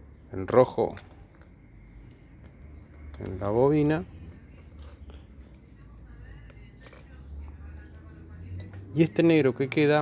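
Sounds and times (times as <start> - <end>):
handling wiring and connectors: 0.5 - 7.1.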